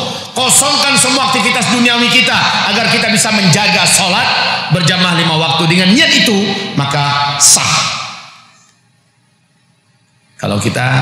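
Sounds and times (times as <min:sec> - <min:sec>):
man talking: 0:00.0 - 0:08.1, 0:10.4 - 0:11.0.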